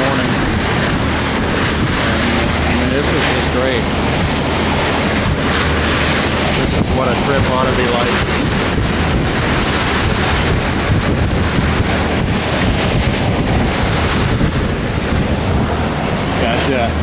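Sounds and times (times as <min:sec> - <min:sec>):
bow wave and spray rushing: 0:00.0 - 0:17.0
low drone: 0:00.0 - 0:17.0
wind buffeting microphone: 0:00.0 - 0:17.0.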